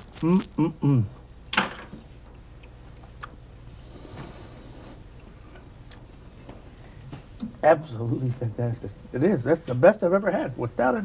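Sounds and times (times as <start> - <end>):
quiet chewing: 0.0 - 1.3, 2.2 - 7.6
low steady hum: 0.0 - 11.0.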